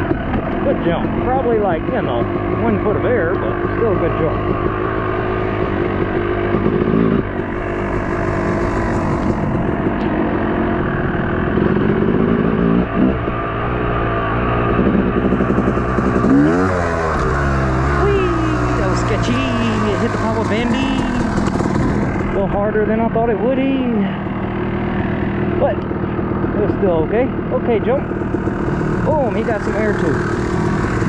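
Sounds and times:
dirt bike engine revving: 0:00.0 - 0:31.0.

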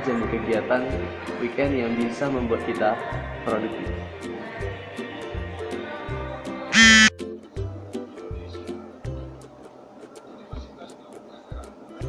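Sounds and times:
background music with beat: 0:06.8 - 0:07.1.

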